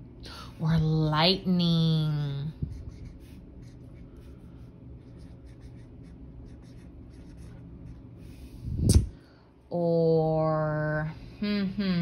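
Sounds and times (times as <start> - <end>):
marker writing on whiteboard: 2.7 - 4.4, 5.0 - 8.4.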